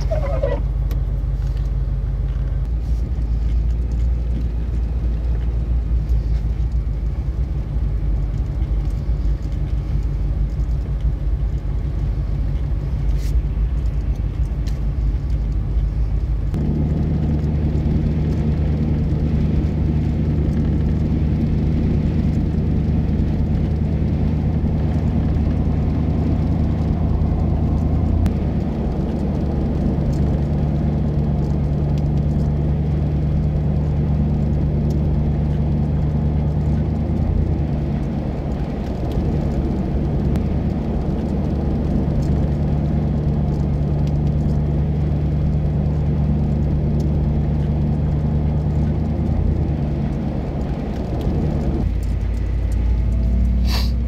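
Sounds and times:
car engine drone: 0.0 - 54.0
road noise inside car: 0.0 - 54.0.

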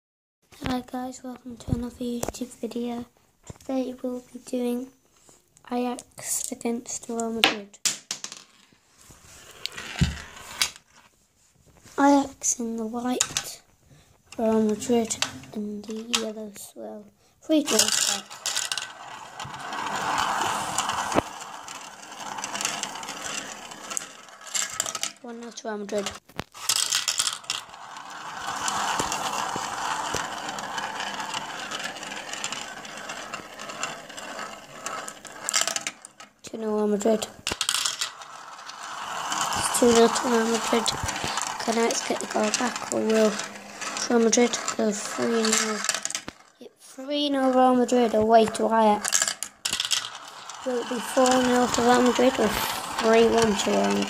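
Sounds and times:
glass marbles clicking: 26.1 - 36.2, 37.4 - 46.4, 49.0 - 54.0.

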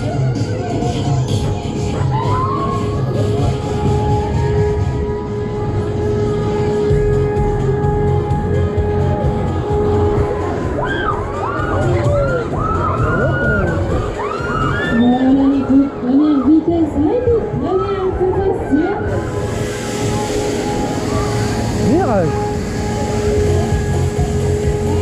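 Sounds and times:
fairground ride music: 0.0 - 25.0.

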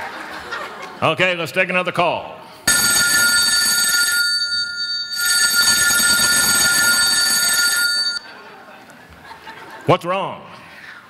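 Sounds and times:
telephone ringing: 2.7 - 8.2.

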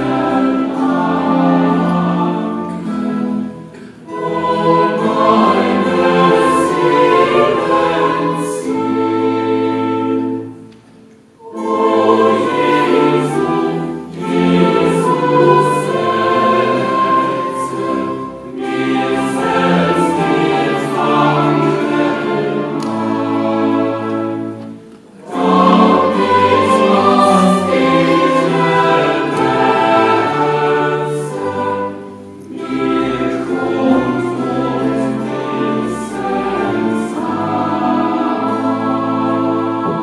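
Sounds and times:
group singing sustained chords: 0.0 - 40.0.

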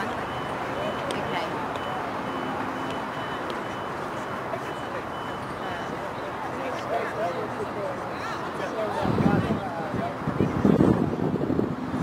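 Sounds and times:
faint distant voices: 0.0 - 12.0
outdoor background noise: 0.0 - 12.0
short high-pitched beep: 0.2 - 6.0.

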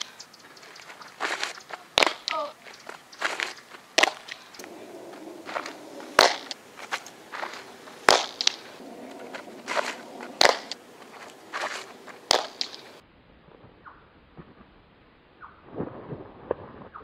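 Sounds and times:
cleats scuffing on dirt: 0.0 - 13.0
softball popping into leather mitt: 5.5 - 6.6, 8.1 - 8.6, 12.3 - 12.8.

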